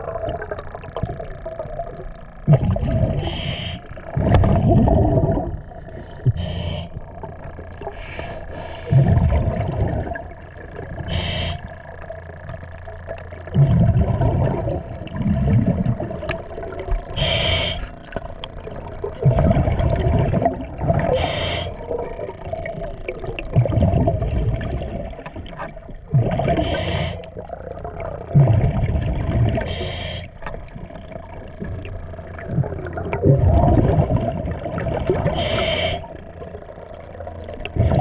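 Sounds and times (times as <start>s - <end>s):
exhaled bubbles rumbling: 0.0s - 38.0s
diver inhaling through regulator: 3.0s - 4.1s, 5.9s - 7.1s, 7.8s - 9.3s, 11.0s - 11.8s, 17.0s - 18.2s, 21.0s - 22.0s, 26.4s - 27.5s, 29.5s - 30.4s, 35.2s - 36.3s.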